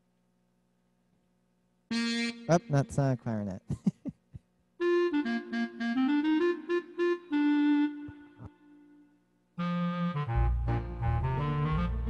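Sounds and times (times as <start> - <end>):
organ melody: 1.9 - 3.0, 4.8 - 12.0.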